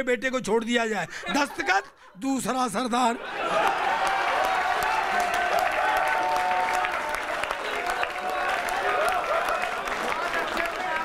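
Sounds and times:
audience laughing: 1.0 - 2.5
audience applauding: 3.3 - 11.0.

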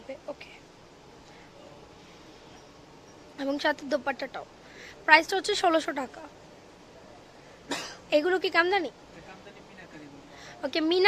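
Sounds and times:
person coughing: 7.7 - 8.0.

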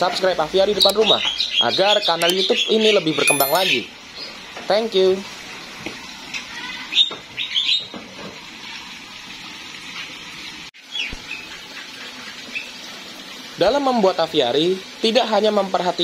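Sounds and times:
high bird chirps: 3.3 - 3.8.

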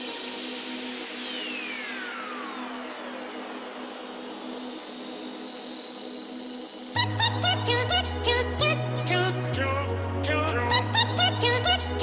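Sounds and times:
downward noise sweep: 0.0 - 7.4.

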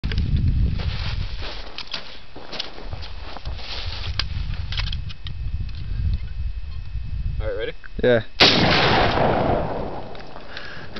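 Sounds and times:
wind rumbling on microphone: 0.0 - 1.8, 2.8 - 10.9
light clicks and crunches: 1.4 - 5.9.

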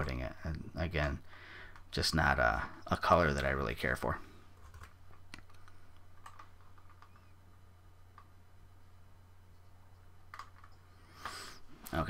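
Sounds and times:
low electrical hum: 0.0 - 12.0
person breathing: 1.2 - 1.8, 10.9 - 11.8.

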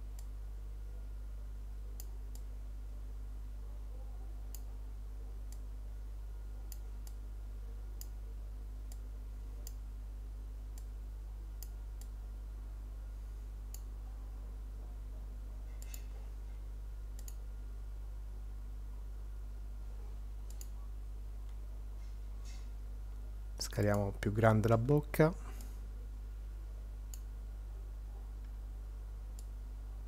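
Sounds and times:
low electrical hum: 0.0 - 30.0
computer mouse clicking: 15.8 - 16.1, 17.2 - 17.4, 20.5 - 20.8.

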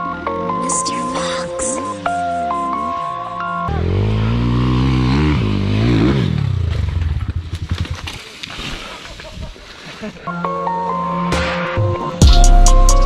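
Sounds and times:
dirt bike engine revving: 3.4 - 8.1.

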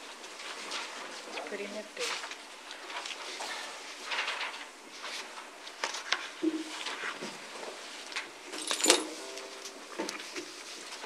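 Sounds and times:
small objects clinking and rattling: 8.5 - 9.2.

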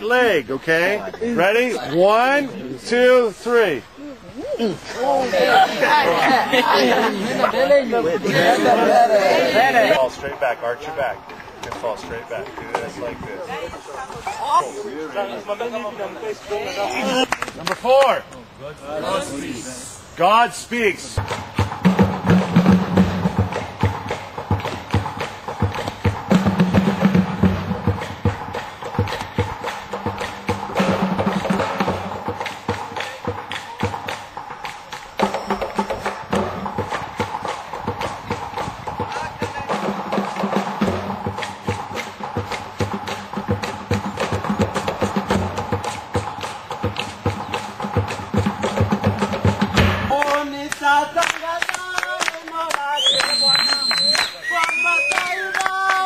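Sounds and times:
music with percussive beat: 21.2 - 51.4.

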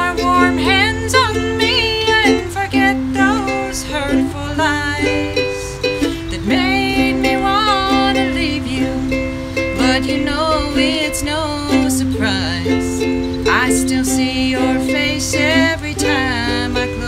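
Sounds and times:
ukulele strumming chords: 0.0 - 17.0
woman singing country song: 0.0 - 17.0.

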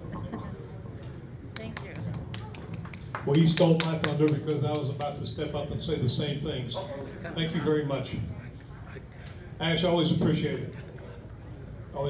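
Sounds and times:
murmur of crowd chatter: 0.0 - 12.0
people clapping: 1.5 - 5.2.

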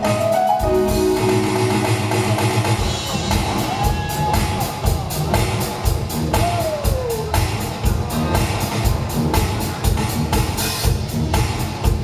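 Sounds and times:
live band instrumental groove: 0.0 - 12.0.

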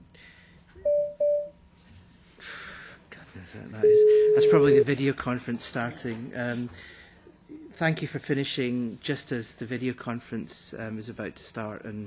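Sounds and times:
short electronic beeps: 3.8 - 4.9.

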